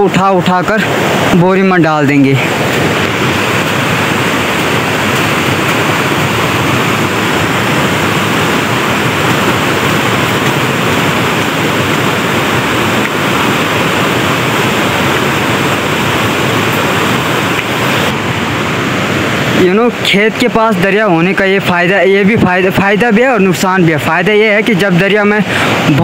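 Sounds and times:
fast-flowing river rushing: 0.0s - 26.0s.

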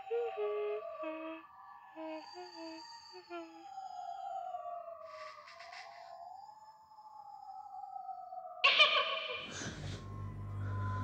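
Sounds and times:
eerie horror film score: 0.0s - 11.0s.

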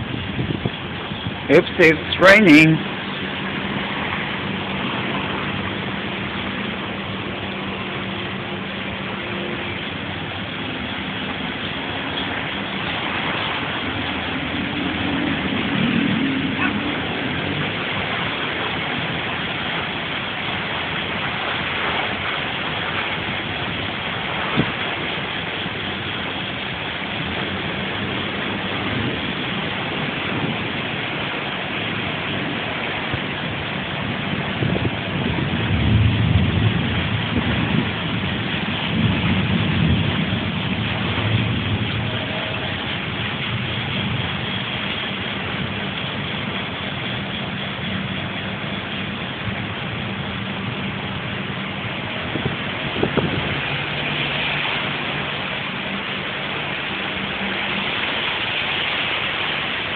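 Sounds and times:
rain on concrete: 0.0s - 59.9s.

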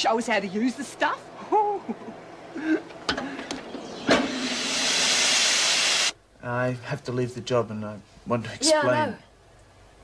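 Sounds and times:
steam press hissing: 4.1s - 6.2s.

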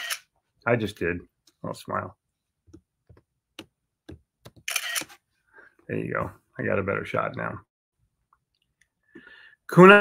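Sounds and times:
camera shutter: 0.0s - 0.2s, 4.7s - 5.1s.

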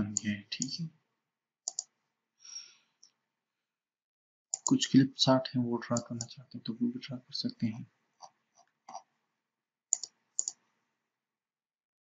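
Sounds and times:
computer mouse clicks: 1.7s - 1.9s, 4.5s - 4.8s, 9.9s - 10.7s.

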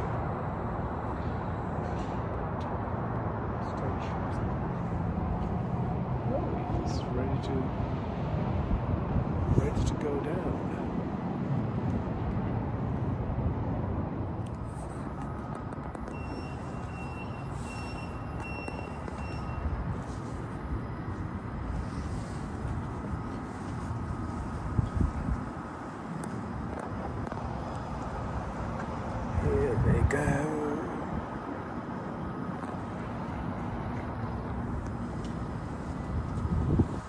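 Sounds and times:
tram cabin rumble and hiss: 0.0s - 37.0s.

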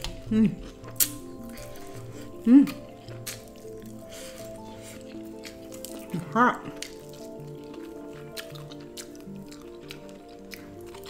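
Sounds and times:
person humming mmm: 0.0s - 10.8s
background music: 0.0s - 11.0s
wet chewing with mouth clicks: 0.0s - 11.0s.

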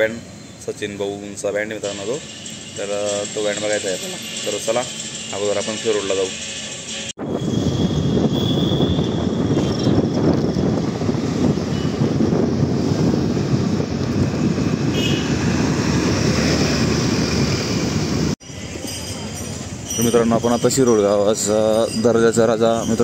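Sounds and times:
road noise: 0.0s - 23.0s
wind rushing on microphone: 7.2s - 18.4s.

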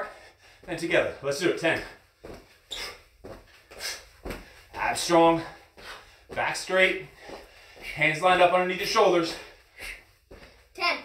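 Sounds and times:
feet landing on carpet: 4.2s - 4.9s.

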